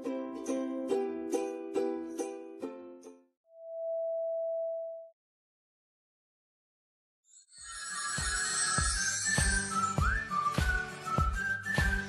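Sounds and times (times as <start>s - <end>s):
strummed ukulele music: 0.0s - 3.3s, 8.7s - 12.0s
electronic test-tone beep: 8.2s - 10.0s.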